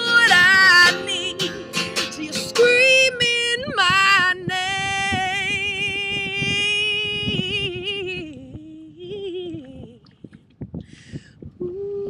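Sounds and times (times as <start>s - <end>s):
strummed acoustic guitar: 0.0s - 7.6s.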